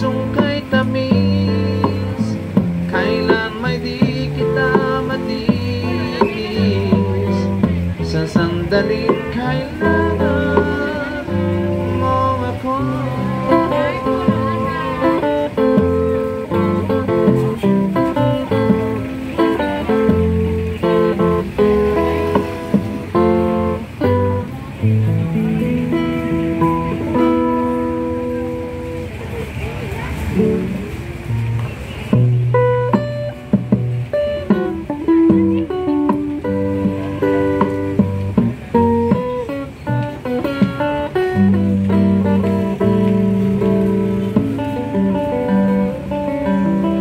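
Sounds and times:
acoustic guitar strumming: 0.0 - 47.0.

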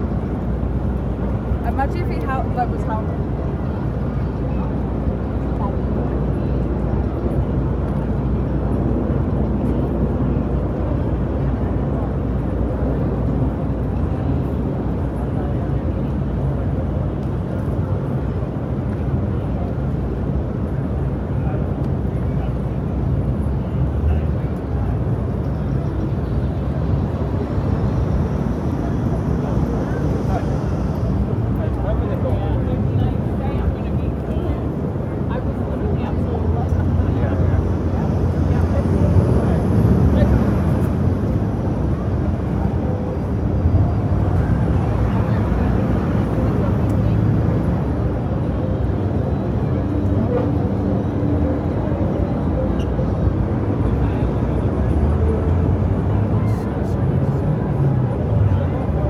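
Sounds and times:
low rumble of traffic: 0.0 - 59.0
passers-by talking: 0.0 - 59.0.

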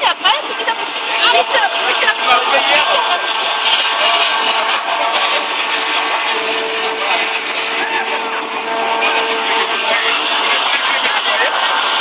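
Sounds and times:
hydraulic machine noise with whine: 0.0 - 12.0.

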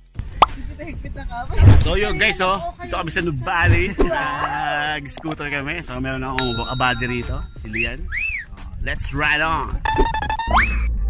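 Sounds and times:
wind thumps on microphone: 0.2 - 2.3
man speaking: 3.3 - 4.0, 6.4 - 8.0.

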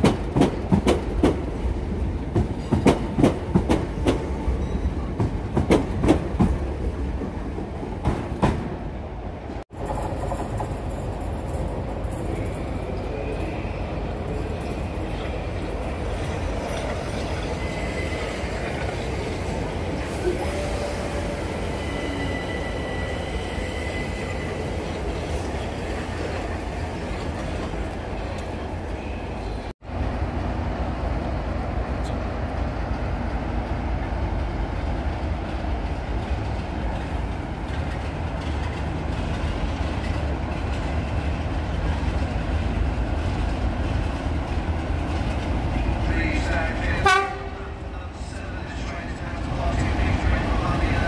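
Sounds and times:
train rumbling by: 0.0 - 51.0
locomotive horn blast: 47.0 - 47.7.

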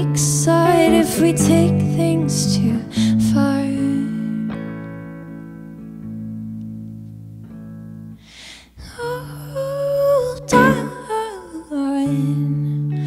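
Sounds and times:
woman singing: 0.0 - 4.6, 8.8 - 13.0
clean electric guitar chords: 0.0 - 13.0.

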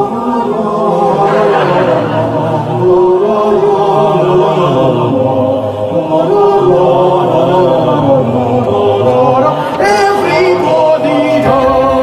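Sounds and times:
men singing long held notes: 0.0 - 12.0.

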